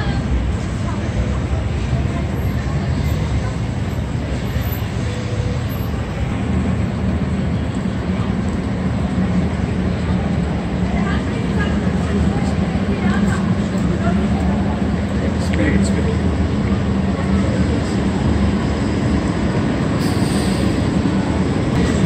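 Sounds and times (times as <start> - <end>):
city traffic rumble: 0.0 - 22.0.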